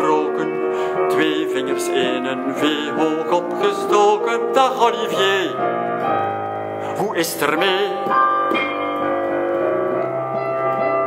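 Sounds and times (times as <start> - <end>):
person singing: 0.0 - 5.7, 6.8 - 8.6
solo piano chords: 0.0 - 11.0.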